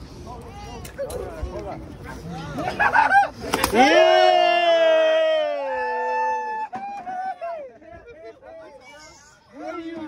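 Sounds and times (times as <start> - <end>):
people yelling and whooping: 0.4 - 10.0.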